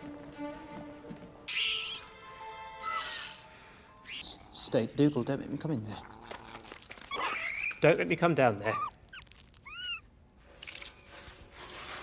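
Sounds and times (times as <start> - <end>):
high squeaks: 8.6 - 12.0.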